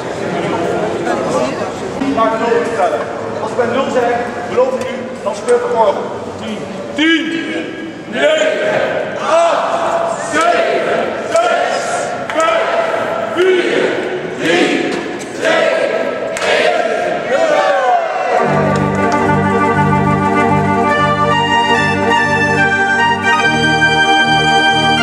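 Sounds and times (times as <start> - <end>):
crowd counting down aloud: 7.2 - 19.5
fairground organ playing: 18.4 - 25.0.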